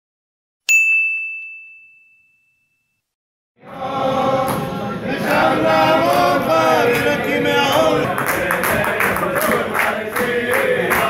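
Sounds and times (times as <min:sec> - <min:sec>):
bright high ding: 0:00.7 - 0:03.0.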